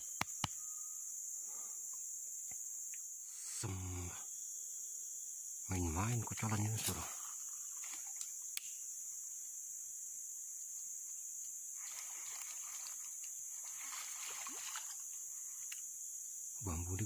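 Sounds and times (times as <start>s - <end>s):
forest insects droning: 0.0s - 17.0s
faint soft hiss: 10.4s - 16.6s.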